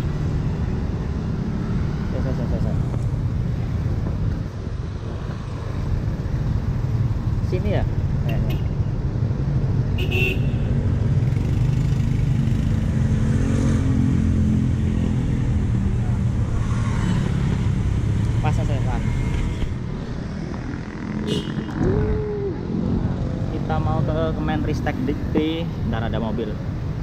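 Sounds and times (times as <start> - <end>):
car engines passing: 0.0 - 27.0
motorcycle engines passing: 0.0 - 27.0.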